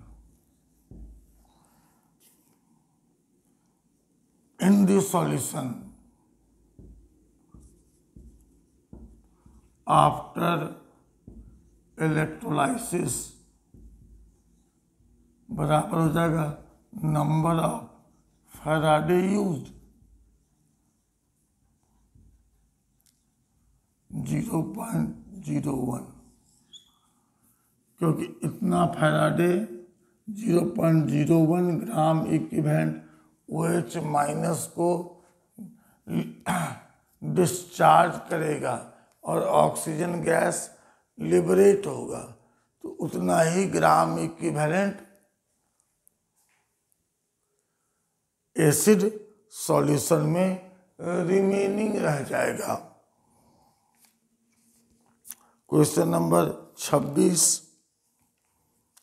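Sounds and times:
marker writing on whiteboard: 0.1s - 2.5s, 6.5s - 9.8s, 10.9s - 12.0s, 13.4s - 15.4s
man clearing his throat: 36.3s - 37.0s.

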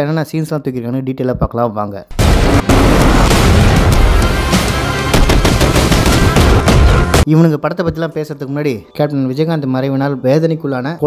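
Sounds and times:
explosion blasts: 2.1s - 7.3s
continuous gunfire: 2.2s - 7.2s
film music score: 2.2s - 7.2s.

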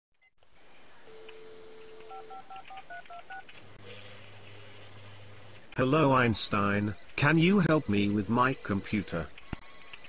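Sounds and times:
telephone dial tone: 1.1s - 3.4s
touch-tone beeps: 6.6s - 10.0s.

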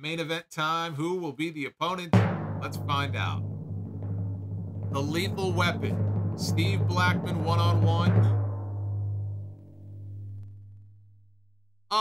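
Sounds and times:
drum roll music sting: 2.2s - 10.8s.

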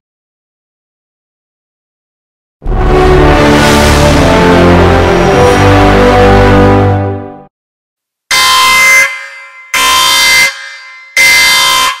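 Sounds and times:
electronic buzzer tone: 8.3s - 12.0s.

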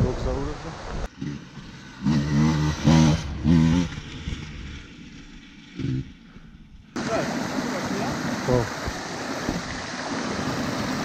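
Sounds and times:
dirt bike engine revving: 1.1s - 8.8s.

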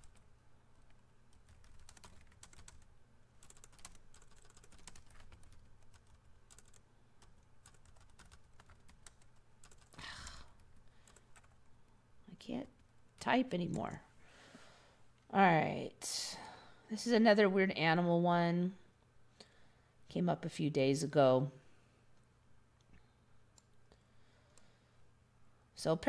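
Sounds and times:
faint typing on a keyboard: 0.0s - 12.0s, 22.2s - 24.8s.

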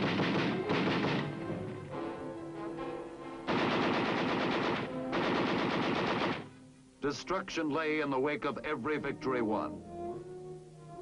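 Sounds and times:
machine-gun fire: 0.0s - 1.5s, 3.5s - 6.5s
orchestral film score: 0.0s - 6.4s.

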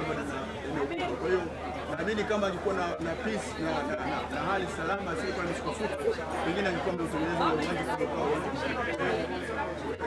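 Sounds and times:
background voices chattering: 0.0s - 10.0s
people talking: 0.0s - 10.0s.

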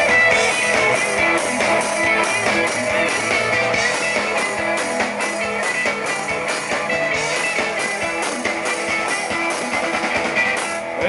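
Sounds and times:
electric guitars: 0.0s - 11.0s
steady drum beat: 0.0s - 11.0s.

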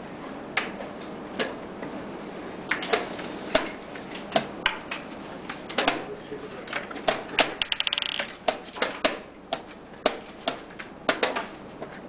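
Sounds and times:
chess pieces knocking on board: 7.1s - 9.7s.

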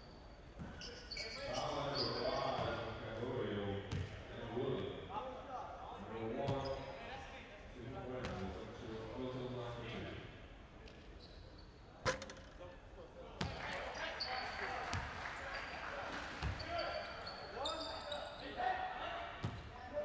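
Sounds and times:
players' voices: 11.9s - 20.0s.

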